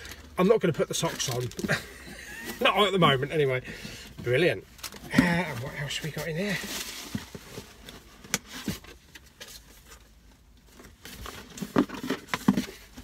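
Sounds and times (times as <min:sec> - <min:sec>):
rummaging in cardboard box: 0:00.8 - 0:13.0.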